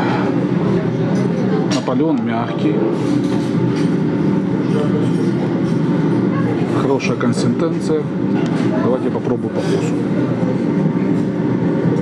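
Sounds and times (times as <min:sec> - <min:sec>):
low mechanical drone: 0:00.0 - 0:12.0.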